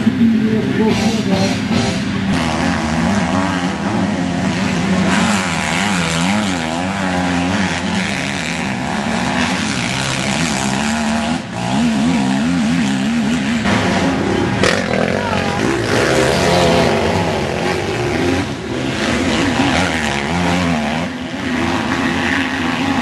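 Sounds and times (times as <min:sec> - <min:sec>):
motocross bike engines revving: 0:00.0 - 0:23.0.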